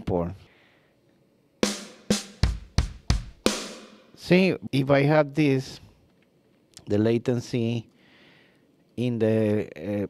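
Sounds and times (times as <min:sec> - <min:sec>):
kick and snare drum hits: 0:01.6 - 0:04.2.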